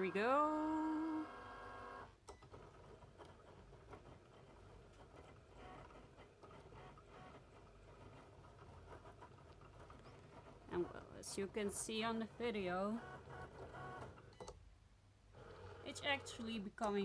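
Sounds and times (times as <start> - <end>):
cutting machine motors whirring: 0.0 - 2.1, 9.2 - 14.4.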